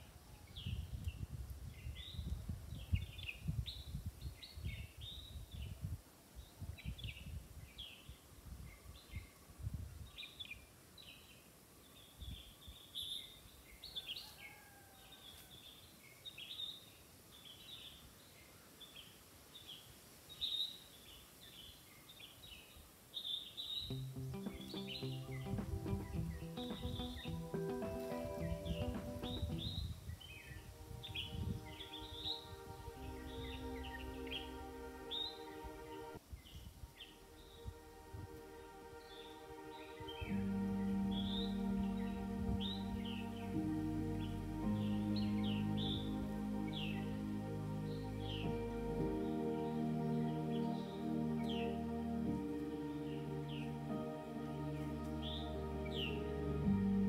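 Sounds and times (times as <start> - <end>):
birds chirping: 23.8 - 29.9
soft background music: 23.9 - 57.0.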